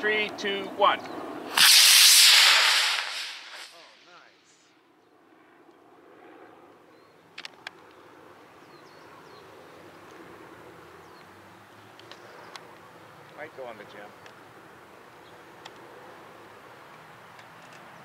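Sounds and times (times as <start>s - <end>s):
faint outdoor background: 0.0s - 18.0s
rocket motor rushing hiss: 1.5s - 4.1s.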